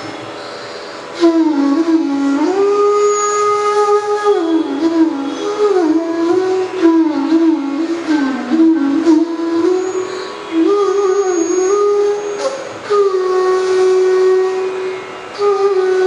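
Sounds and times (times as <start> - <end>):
bamboo flutes playing: 0.0 - 16.0.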